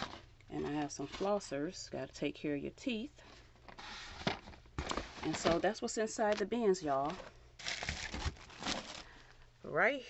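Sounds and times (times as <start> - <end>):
plastic bag crinkling: 3.6 - 9.3.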